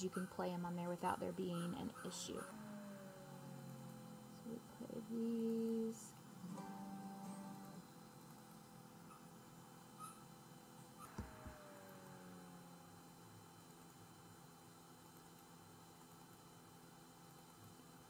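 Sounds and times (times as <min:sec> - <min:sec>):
faint electrical hum: 0:00.0 - 0:18.0.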